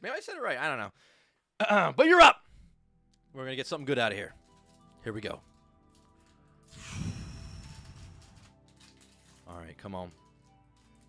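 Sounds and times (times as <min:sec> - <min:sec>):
foil wrapper tearing: 0:04.4 - 0:11.0.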